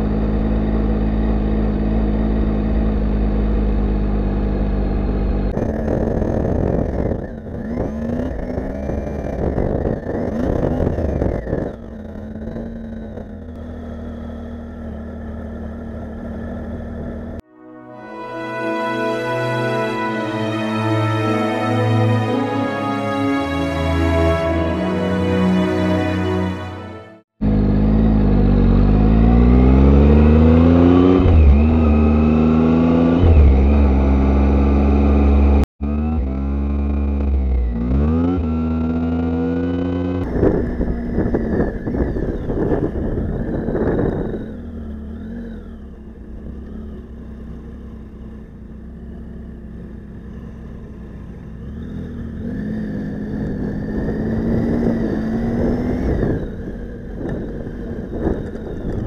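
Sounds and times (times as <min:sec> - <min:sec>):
motorcycle engine accelerating: 0:00.0 - 0:17.4, 0:18.6 - 0:59.0
road noise: 0:00.0 - 0:59.0.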